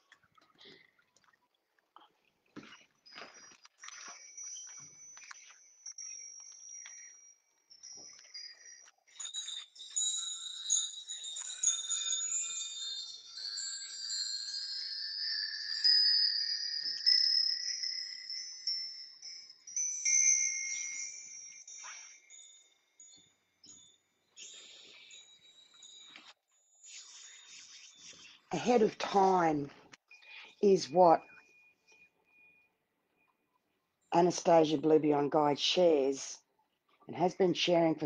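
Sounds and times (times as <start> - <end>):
chimes ringing: 2.6 - 33.5.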